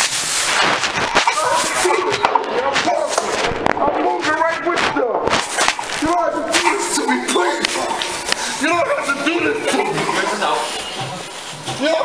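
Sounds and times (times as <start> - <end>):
clothing rubbing against microphone: 0.0 - 12.0.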